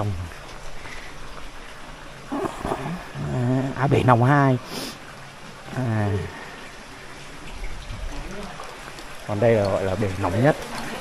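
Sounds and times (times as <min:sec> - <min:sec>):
water running into pool: 0:00.0 - 0:11.0.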